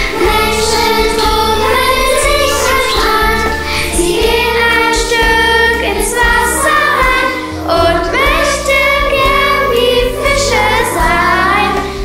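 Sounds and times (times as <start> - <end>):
children singing together: 0.0 - 12.0
instrumental backing track: 0.0 - 12.0.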